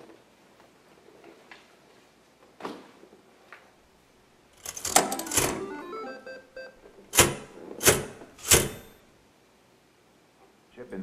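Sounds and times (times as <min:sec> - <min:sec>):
short electronic beeps: 0:05.0 - 0:06.8.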